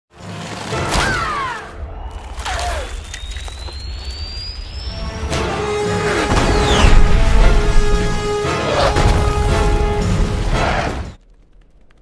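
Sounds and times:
short falling squeal: 0:02.8 - 0:05.4
thin rising whistle: 0:02.9 - 0:05.3.

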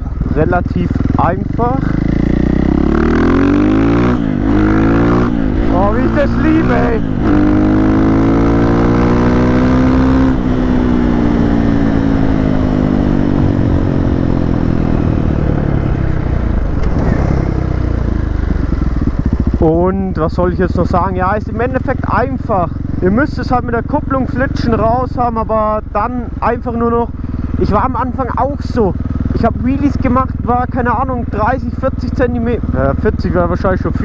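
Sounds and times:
motorcycle engine revving: 0:00.0 - 0:34.0.

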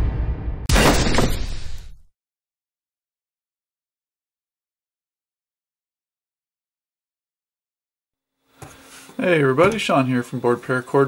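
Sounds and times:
crash sound effect: 0:00.0 - 0:02.1.

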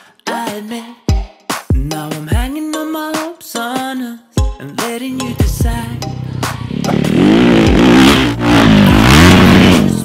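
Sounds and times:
music playing: 0:00.0 - 0:10.0
motocross bike engine revving: 0:05.2 - 0:10.0.

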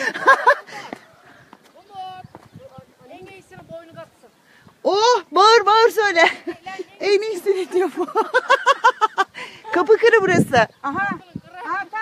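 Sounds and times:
footsteps on bare rock: 0:00.8 - 0:04.8
faint women's voices talking: 0:09.6 - 0:12.0.

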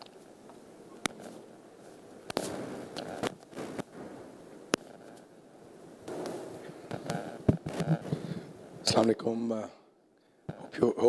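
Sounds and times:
microphone rubbing noise: 0:01.1 - 0:05.3, 0:06.0 - 0:08.8
microphone knocks: 0:06.1 - 0:08.4.

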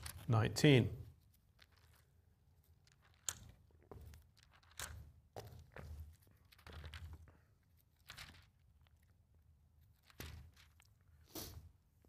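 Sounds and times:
thin pages being flipped: 0:00.0 - 0:00.3, 0:01.2 - 0:09.1, 0:09.8 - 0:11.0.

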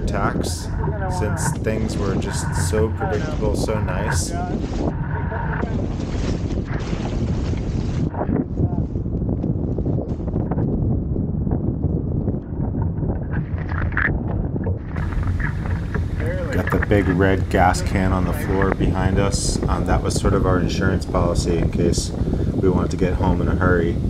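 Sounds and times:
water splashing along boat hull: 0:00.0 - 0:09.5, 0:12.7 - 0:20.4
wind buffeting microphone: 0:00.0 - 0:24.0.

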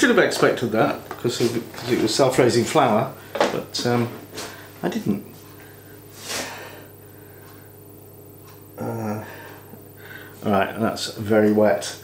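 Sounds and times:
faint low hum: 0:00.0 - 0:12.0
man breathing: 0:05.6 - 0:07.8, 0:08.9 - 0:10.4
wordless vocal hum: 0:08.8 - 0:09.8.

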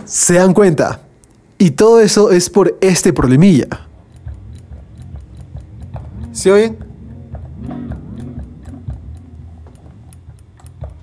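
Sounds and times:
guitar strings ticking: 0:03.2 - 0:11.0
electric guitar low wavering notes: 0:04.2 - 0:11.0.

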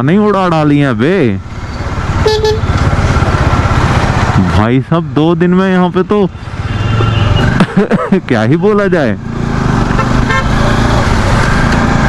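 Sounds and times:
road and wind noise: 0:00.0 - 0:12.0
motorcycle engine running: 0:00.4 - 0:07.8, 0:08.5 - 0:12.0
short horn toot: 0:02.3 - 0:02.6.

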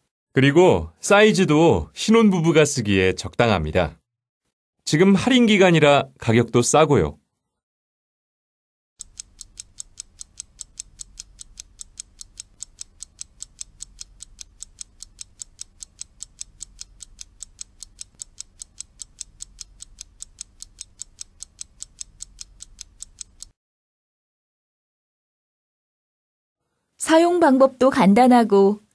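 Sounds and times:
clock ticking: 0:09.0 - 0:23.6.

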